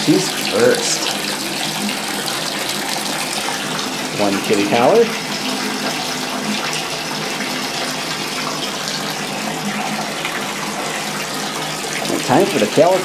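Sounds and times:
water running from bathtub faucet: 0.0 - 13.0.

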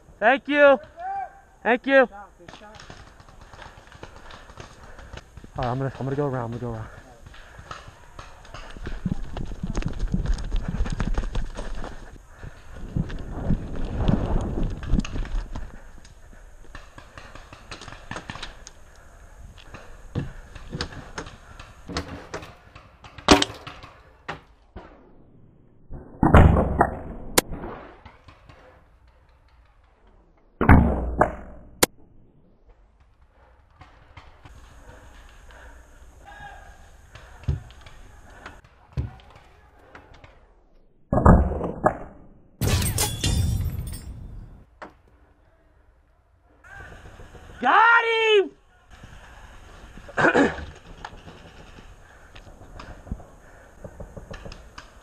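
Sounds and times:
paintball markers firing: 2.4 - 9.2, 50.7 - 55.0.

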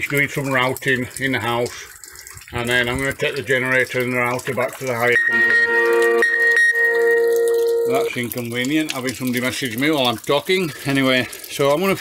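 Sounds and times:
phone message alert tone: 5.2 - 8.1.

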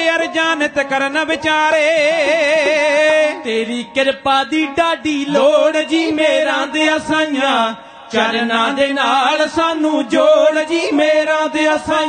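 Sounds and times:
men singing devotional song: 0.0 - 12.0
sarangi playing: 0.0 - 12.0.

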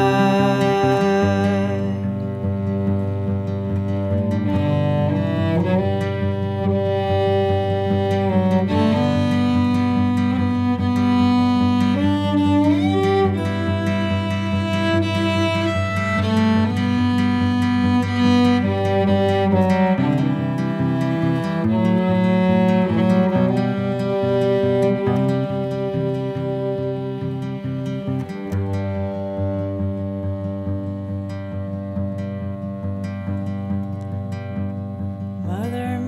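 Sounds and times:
bowed strings holding notes: 0.0 - 36.0.

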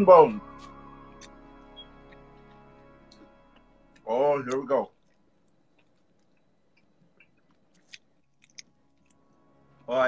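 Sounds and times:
chewing and biting chicken wings: 4.5 - 9.2
mouth smacks and clicks: 4.5 - 9.2.

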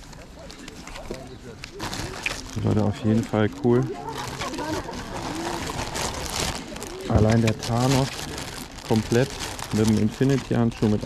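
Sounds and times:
faint voices: 0.0 - 11.0
plastic bag of bricks rustling: 0.0 - 11.0.

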